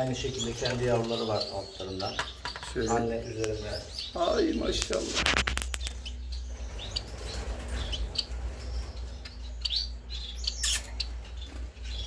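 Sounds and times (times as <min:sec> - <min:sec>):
finches chirping: 0:00.0 - 0:12.0.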